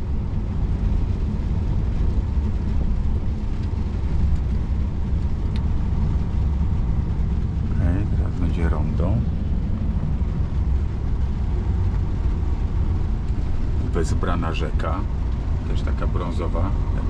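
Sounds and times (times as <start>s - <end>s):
diesel engine rumble: 0.0s - 17.0s.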